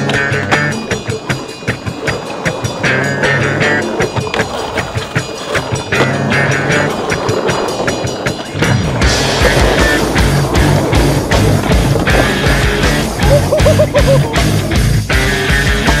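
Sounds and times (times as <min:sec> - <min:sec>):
skateboard wheels rolling: 0:00.0 - 0:16.0
music with steady beat: 0:08.4 - 0:16.0.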